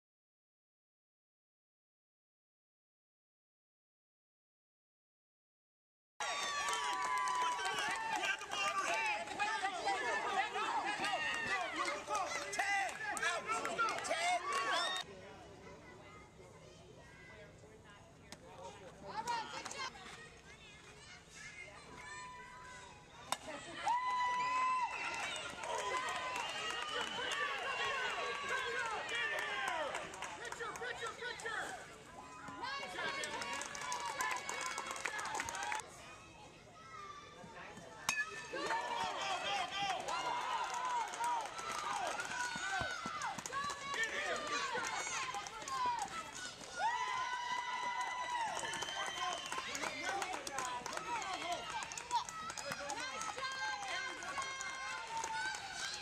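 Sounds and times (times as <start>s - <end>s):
people shouting and cheering: 6.2s - 15.1s, 19.2s - 56.0s.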